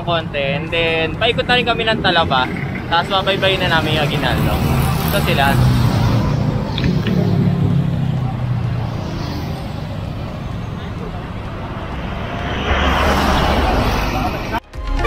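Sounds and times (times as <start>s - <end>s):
passing vehicle: 0.0s - 14.7s
roadside traffic: 0.0s - 15.0s.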